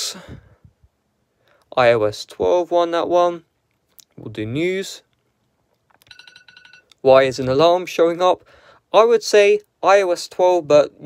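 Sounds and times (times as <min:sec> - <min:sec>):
phone alarm beeps: 0:06.0 - 0:06.9.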